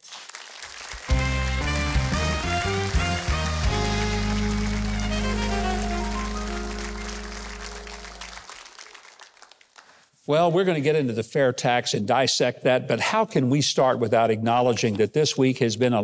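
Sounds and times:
audience applause: 0.0s - 10.0s
house band playing: 1.1s - 8.5s.

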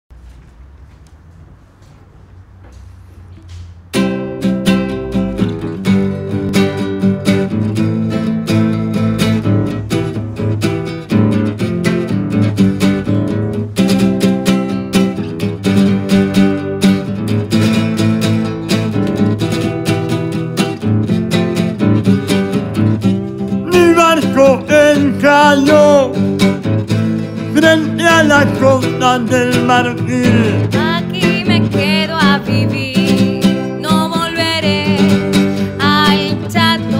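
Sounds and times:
strummed acoustic guitar: 3.8s - 36.9s.

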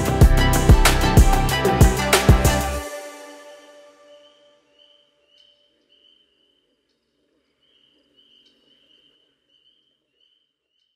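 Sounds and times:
music: 0.0s - 5.2s.

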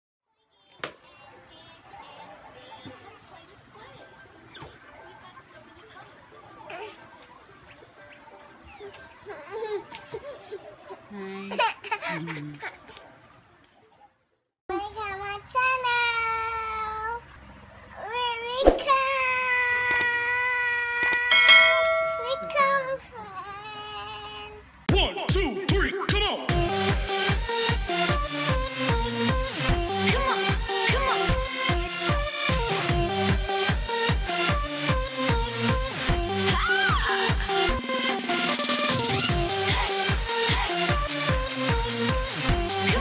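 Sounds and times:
faint children sounds: 0.3s - 24.9s
bright bell-like chime: 21.3s - 22.8s.

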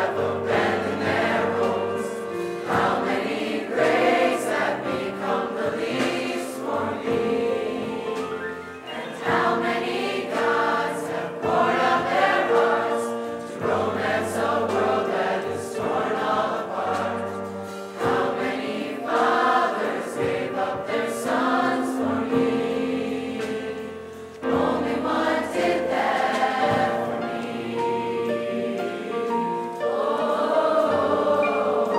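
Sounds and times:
choir singing a worship song: 0.0s - 31.9s.

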